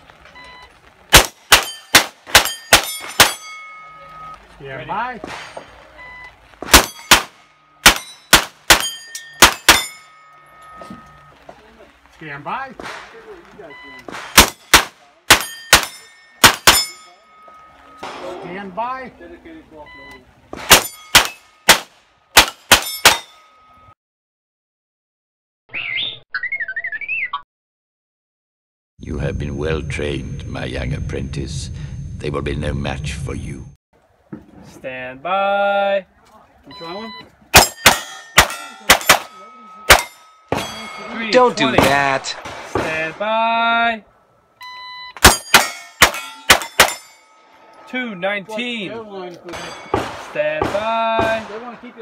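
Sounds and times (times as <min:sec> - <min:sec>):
steel target plate ringing: 0:01.5 - 0:04.2, 0:06.8 - 0:11.4, 0:15.3 - 0:18.6, 0:20.7 - 0:21.7, 0:22.4 - 0:23.9, 0:37.5 - 0:42.1, 0:45.2 - 0:48.8, 0:49.4 - 0:50.9
rapid gunshots: 0:45.2 - 0:47.0.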